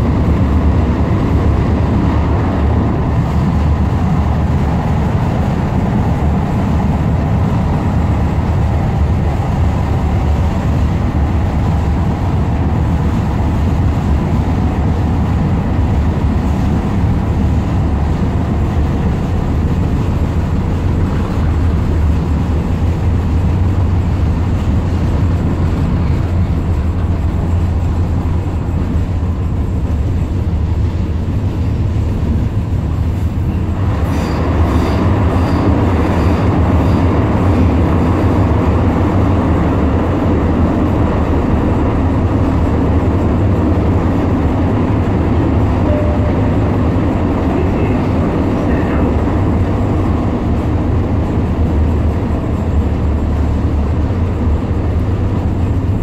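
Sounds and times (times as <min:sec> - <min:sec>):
train wheels rumbling: 0:00.0 - 0:56.0.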